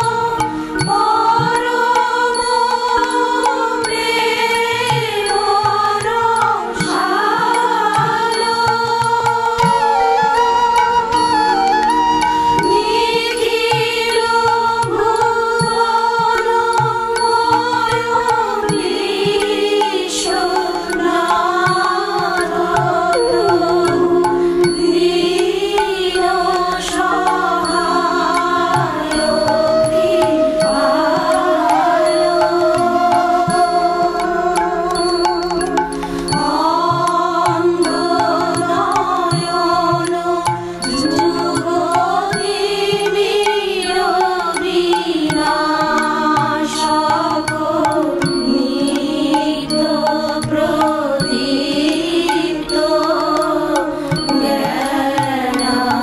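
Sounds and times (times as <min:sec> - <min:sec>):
person singing long notes: 0:00.0 - 0:56.0
sustained instrumental accompaniment: 0:00.0 - 0:56.0.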